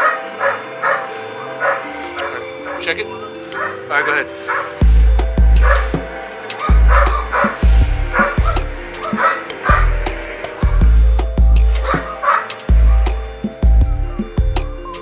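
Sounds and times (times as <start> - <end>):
dog barking: 0.0 - 1.9, 3.5 - 3.8, 4.4 - 4.8
music with deep bass pulses: 3.9 - 15.0.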